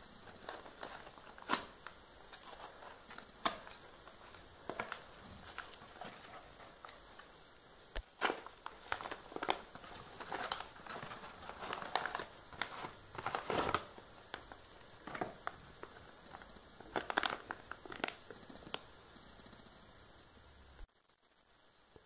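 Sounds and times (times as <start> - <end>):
paper envelope tearing and crinkling: 0.2 - 7.2, 8.1 - 18.2.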